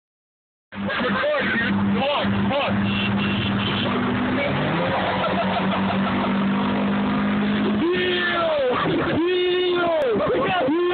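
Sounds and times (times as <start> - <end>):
car engine and road drone: 0.7 - 10.9.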